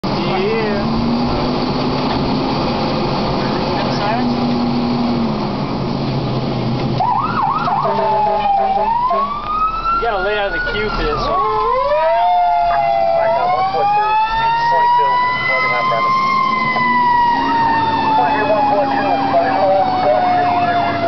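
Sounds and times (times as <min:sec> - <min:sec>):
fire truck engine running: 0:00.0 - 0:21.0
siren yelping and wailing: 0:07.0 - 0:21.0.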